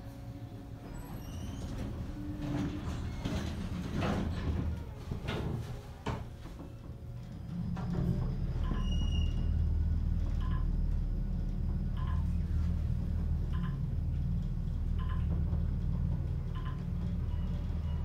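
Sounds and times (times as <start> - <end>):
elevator low rumble: 0.0 - 18.0.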